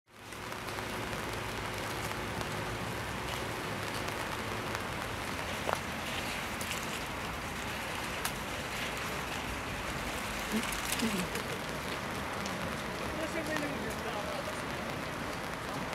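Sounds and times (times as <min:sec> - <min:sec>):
light rain hissing: 0:00.1 - 0:15.9.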